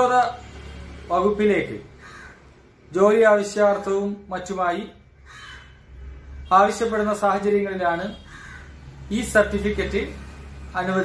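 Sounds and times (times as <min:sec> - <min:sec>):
man speaking: 0:00.0 - 0:00.4, 0:01.1 - 0:02.0, 0:02.9 - 0:05.0, 0:06.5 - 0:08.2, 0:09.1 - 0:11.0
faint harsh bird call: 0:05.2 - 0:06.5.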